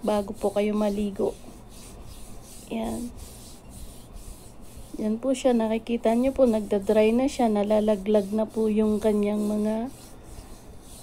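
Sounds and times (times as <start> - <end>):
hand rubbing scrub on skin: 0.0 - 11.0.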